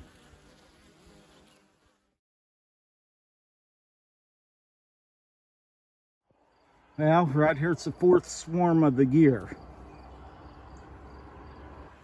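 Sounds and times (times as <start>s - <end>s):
bees buzzing: 0.0s - 2.2s, 6.4s - 12.0s.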